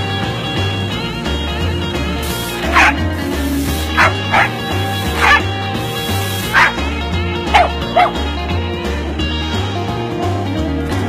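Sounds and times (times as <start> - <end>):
music with repeating bass line: 0.0 - 11.0
dog barking: 2.7 - 3.0, 3.9 - 5.5, 6.4 - 6.8, 7.5 - 8.2.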